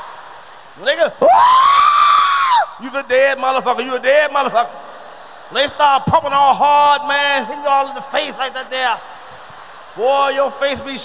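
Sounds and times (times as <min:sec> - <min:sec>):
high-pitched scream: 0:01.2 - 0:02.8.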